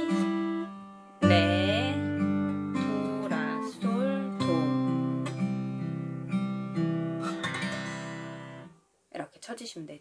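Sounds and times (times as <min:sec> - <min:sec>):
fingerpicked acoustic guitar: 0:00.0 - 0:08.8.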